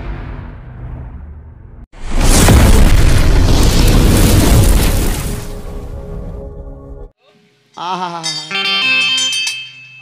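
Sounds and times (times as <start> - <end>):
explosion boom: 0.0 - 6.4.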